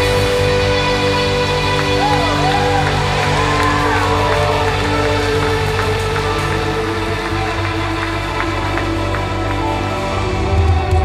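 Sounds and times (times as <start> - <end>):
worship band holding a chord: 0.0 - 11.0
scattered clapping: 1.5 - 10.6.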